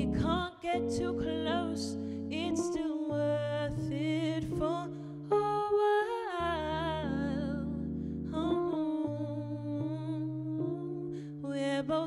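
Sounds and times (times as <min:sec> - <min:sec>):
electric bass notes: 0:00.0 - 0:01.6
electric piano chords: 0:00.0 - 0:12.0
woman singing wordless jazz line: 0:00.0 - 0:12.0.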